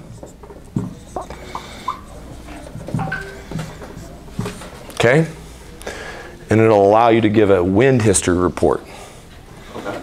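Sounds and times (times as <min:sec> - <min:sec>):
marker scratching on whiteboard: 0:00.0 - 0:04.9.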